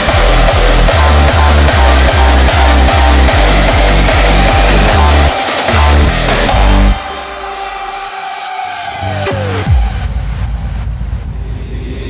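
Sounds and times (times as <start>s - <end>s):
deep electronic rumble: 0.0s - 7.0s, 9.0s - 12.0s.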